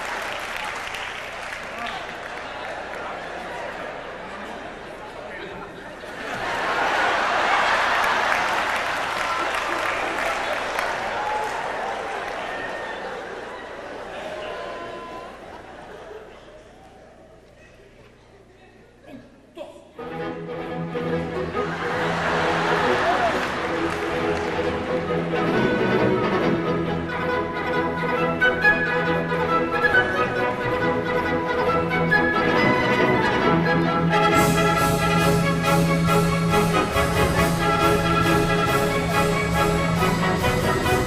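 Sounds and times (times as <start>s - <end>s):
audience applauding: 0.0s - 4.8s, 6.2s - 16.0s, 21.6s - 25.8s
orchestra playing sustained notes: 20.0s - 41.0s.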